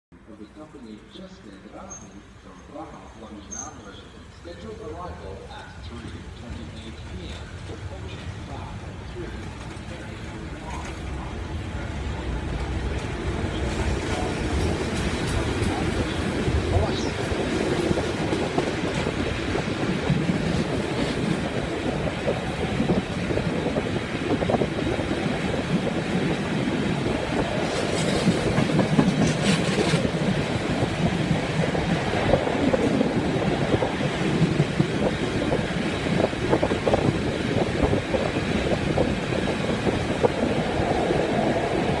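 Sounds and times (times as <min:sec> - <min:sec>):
train running gear rumble: 0:00.5 - 0:42.0
train clattering over points: 0:01.9 - 0:42.0
wheels clacking over rail joints: 0:05.8 - 0:42.0
rushing air: 0:11.0 - 0:42.0.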